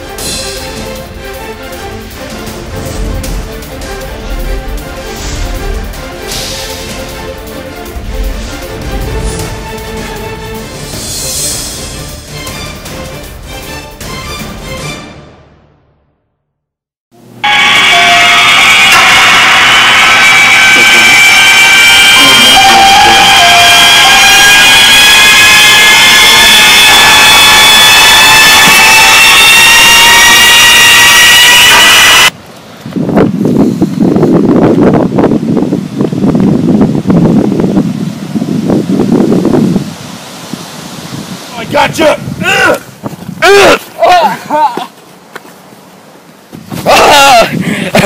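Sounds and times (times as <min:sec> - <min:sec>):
loud hissing drone with high tones: 0:17.4 - 0:24.8.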